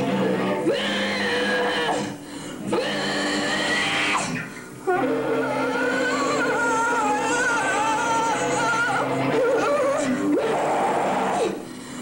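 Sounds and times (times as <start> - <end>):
distorted electric guitar drone: 0.0 - 12.0.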